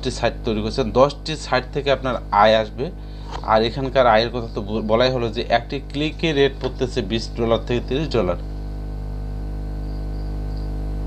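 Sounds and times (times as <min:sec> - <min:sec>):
faint high whine: 0:00.0 - 0:11.0
low electrical hum: 0:00.0 - 0:11.0.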